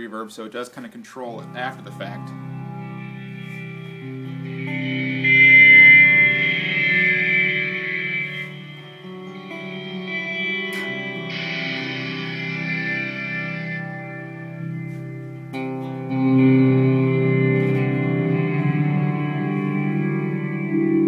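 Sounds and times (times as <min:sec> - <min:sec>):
electric guitar chords with reverb: 0:01.3 - 0:21.0.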